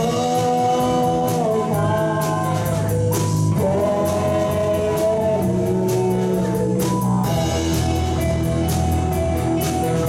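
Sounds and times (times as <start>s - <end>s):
person singing: 0.0s - 8.4s
rock band playing live: 0.0s - 10.0s.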